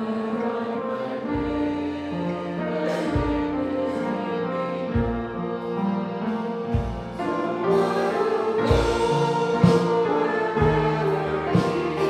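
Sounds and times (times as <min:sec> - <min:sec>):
congregation singing a hymn: 0:00.0 - 0:12.0
band with drum kit: 0:02.8 - 0:03.6, 0:06.6 - 0:12.0
low drum beat: 0:08.6 - 0:12.0.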